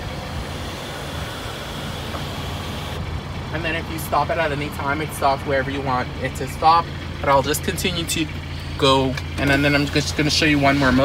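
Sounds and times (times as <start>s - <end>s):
electric motor whine: 0.0s - 3.0s
car engine idling: 0.0s - 11.0s.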